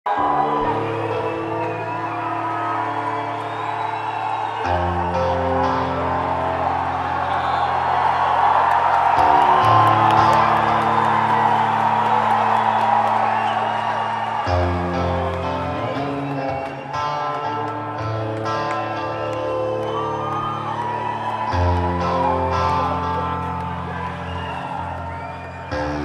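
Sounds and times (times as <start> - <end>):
crowd whooping and cheering: 0.0 - 26.0
rock band playing held chords: 0.1 - 26.0.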